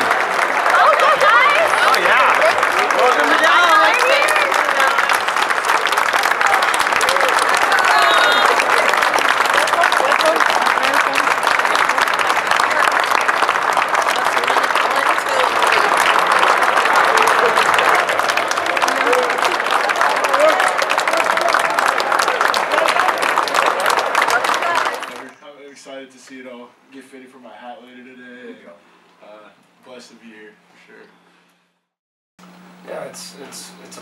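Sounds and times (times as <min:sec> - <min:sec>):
crowd clapping: 0:00.0 - 0:25.4
scattered voices: 0:00.0 - 0:25.9.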